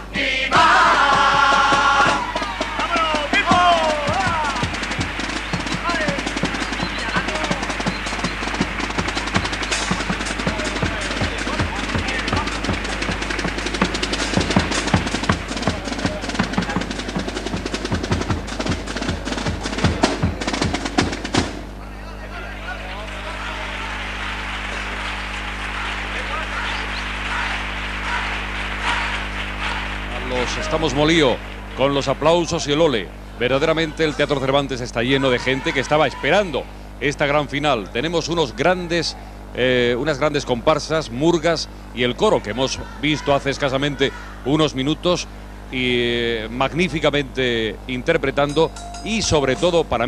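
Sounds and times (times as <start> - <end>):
crowd murmur: 0.0 - 21.0, 21.6 - 31.8
audience shouts: 0.3 - 12.7, 22.2 - 31.9, 35.1 - 36.6
audience applauding: 0.5 - 20.2, 22.4 - 32.7.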